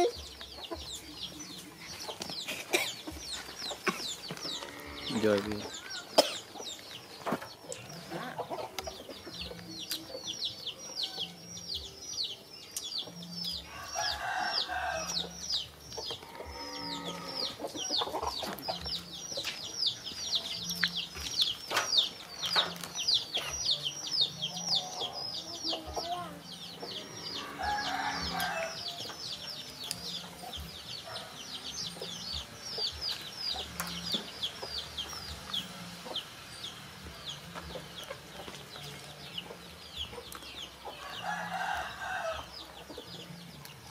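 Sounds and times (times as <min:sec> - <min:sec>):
chicken clucking: 0:00.0 - 0:11.4, 0:15.9 - 0:29.4
chicks peeping: 0:00.0 - 0:43.9.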